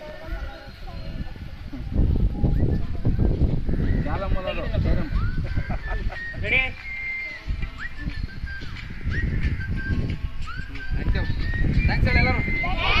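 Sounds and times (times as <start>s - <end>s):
children chattering and calling out: 0.0s - 6.0s, 12.4s - 13.0s.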